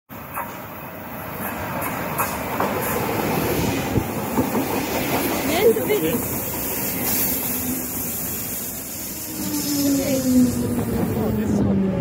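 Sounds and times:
electric train running in: 0.2s - 12.0s
train wheels clicking over rail joints: 3.8s - 11.5s.

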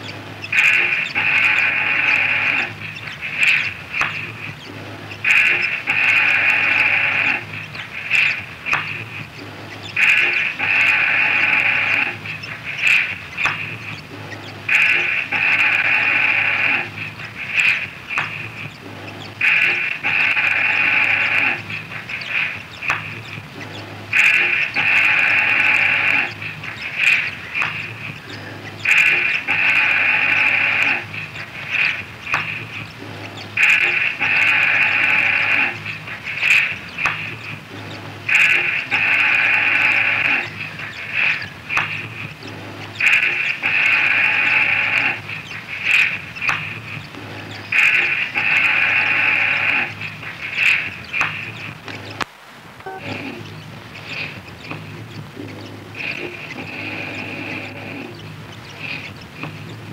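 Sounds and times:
sharp clicks: 0.0s - 52.9s
loud buzzy pitched loop: 0.0s - 59.9s.

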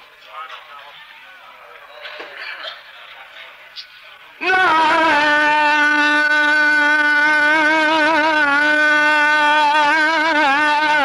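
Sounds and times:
man singing long note: 4.4s - 11.0s.

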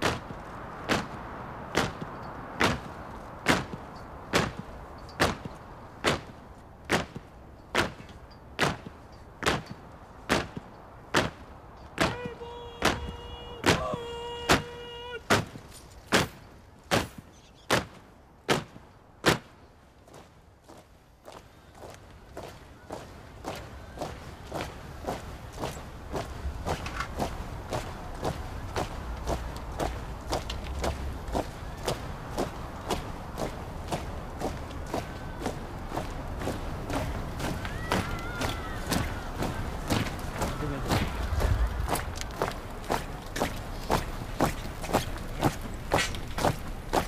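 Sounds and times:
boots marching on pavement: 20.0s - 47.0s.

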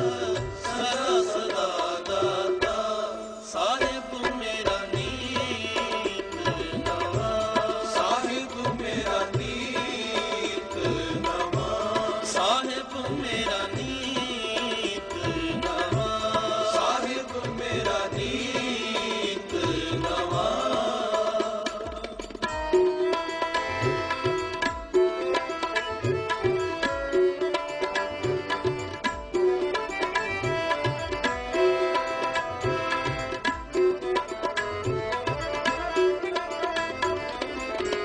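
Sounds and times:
chanted melodic singing: 0.0s - 38.0s
sustained accompaniment: 0.0s - 38.0s
tabla strokes: 0.0s - 38.0s.

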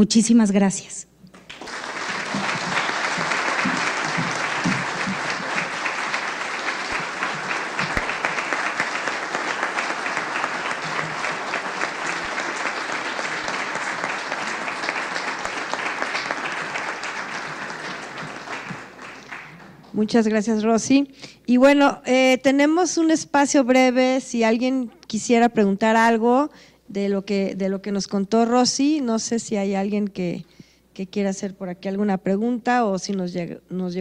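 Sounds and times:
audience applauding: 1.4s - 20.0s.

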